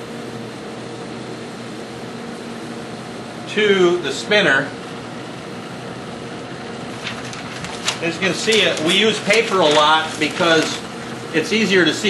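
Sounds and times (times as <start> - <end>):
room ventilation hiss: 0.0 - 12.0.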